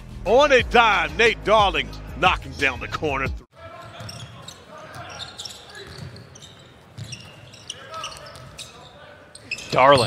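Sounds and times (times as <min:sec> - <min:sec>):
sneaker squeaks: 0:03.7 - 0:10.0.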